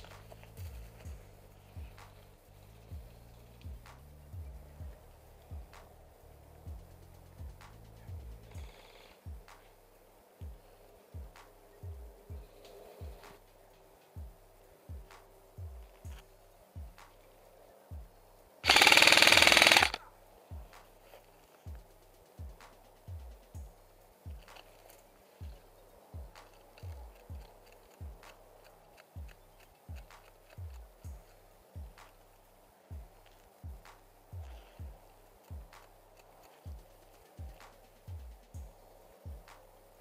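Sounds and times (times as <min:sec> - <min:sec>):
background music with bass beat: 0:00.0 - 0:40.0
airsoft gun full-auto fire: 0:18.6 - 0:20.0.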